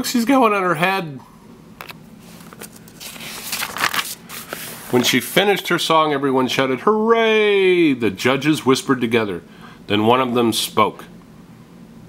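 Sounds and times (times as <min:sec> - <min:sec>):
paper page turning: 0:01.8 - 0:05.4.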